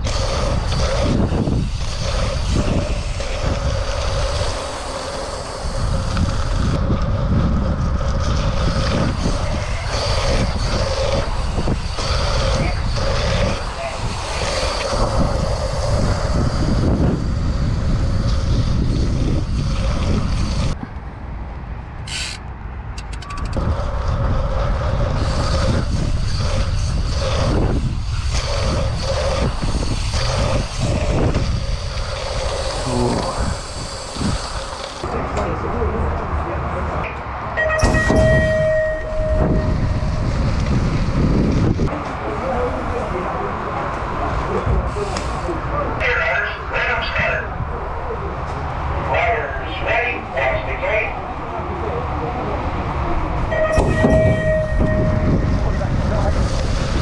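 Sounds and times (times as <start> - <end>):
bike tyres rolling on track: 0.0 - 21.1, 21.8 - 46.2, 46.8 - 57.0
wind buffeting microphone: 0.0 - 46.0, 51.1 - 57.0.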